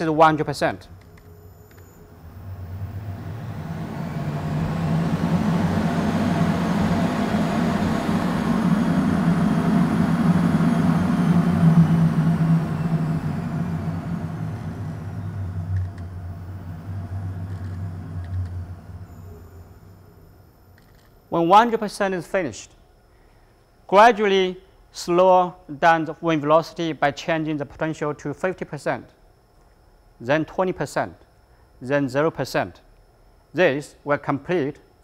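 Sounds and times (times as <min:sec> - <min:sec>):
wind tunnel fan whining: 0:00.0 - 0:29.0.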